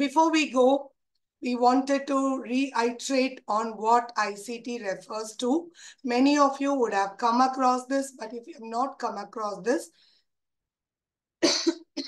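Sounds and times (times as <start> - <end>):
woman coughing: 11.4 - 12.0.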